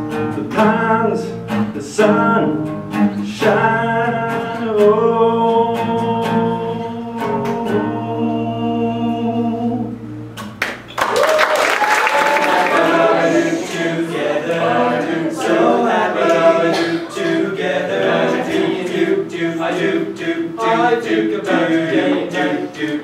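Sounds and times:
boys singing a cappella: 3.2s - 10.0s, 12.4s - 23.0s.

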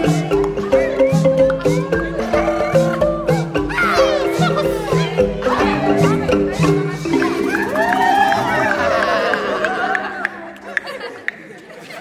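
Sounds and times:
murmur of chatter: 0.0s - 12.0s.

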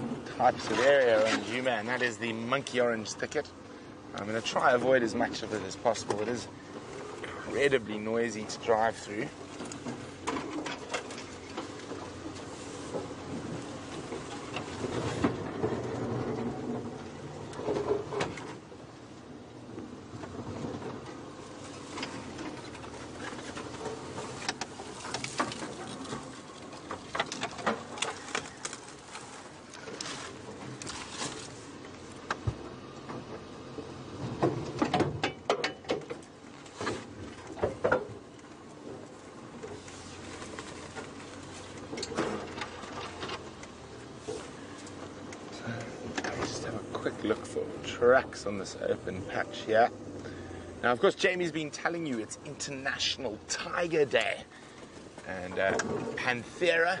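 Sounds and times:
branches scraping vehicle body: 0.0s - 19.0s, 19.6s - 57.0s
vehicle bumps and rattles: 0.0s - 57.0s
vehicle engine running: 38.2s - 57.0s.

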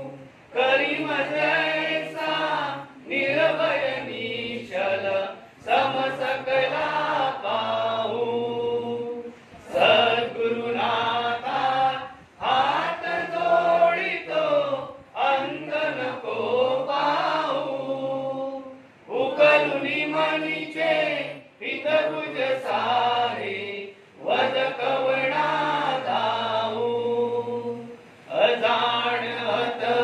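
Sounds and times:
group chanting in unison: 0.0s - 30.0s.

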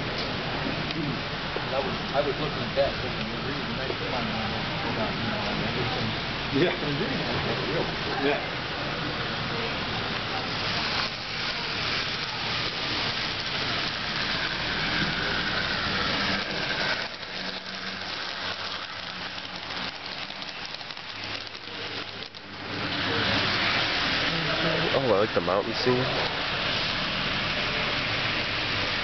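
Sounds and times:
model train running on track: 0.0s - 29.0s
faint voices: 0.6s - 26.7s.

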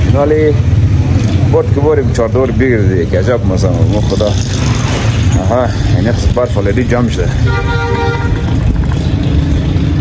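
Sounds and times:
low traffic rumble: 0.0s - 10.0s
man talking: 1.5s - 4.6s, 5.3s - 7.5s.

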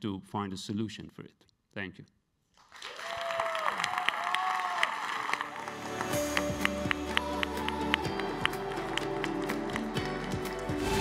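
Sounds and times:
audience applause: 2.6s - 11.0s
cheers: 2.8s - 6.2s
outro music with steady beat: 5.4s - 11.0s.

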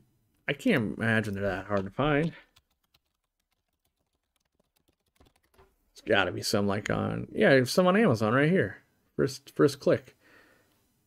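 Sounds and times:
computer keyboard typing: 1.2s - 5.8s.

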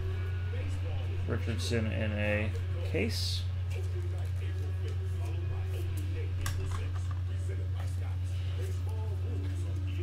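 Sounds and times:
faint voices: 0.0s - 10.0s
steady low hum: 0.0s - 10.0s.

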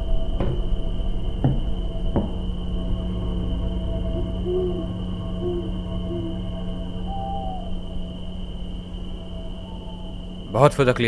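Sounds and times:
ambient drone: 0.0s - 11.0s
owl hooting: 3.5s - 10.6s.

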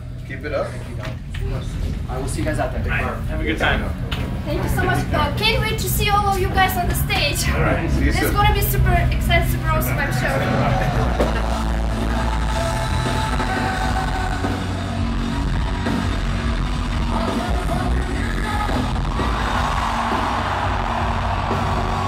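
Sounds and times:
loud rock music: 8.7s - 22.0s
crowd singing along and cheering: 10.5s - 22.0s.

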